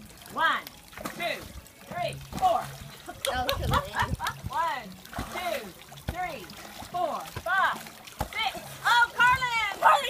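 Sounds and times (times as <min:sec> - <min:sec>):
water splashing in pool: 0:00.0 - 0:10.0.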